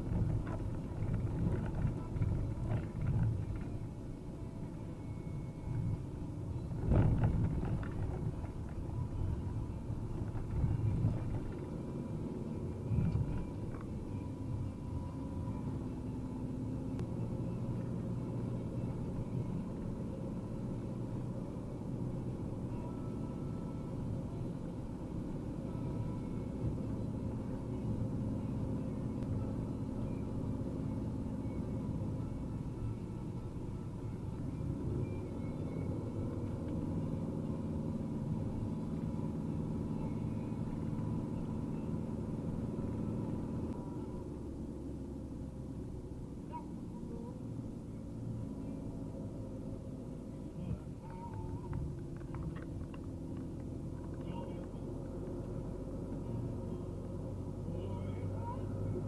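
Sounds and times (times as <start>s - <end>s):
diesel engine inside cab: 0.0s - 59.0s.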